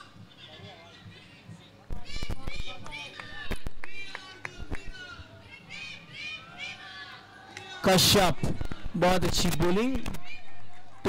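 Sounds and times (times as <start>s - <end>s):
players shouting calls: 2.0s - 10.9s.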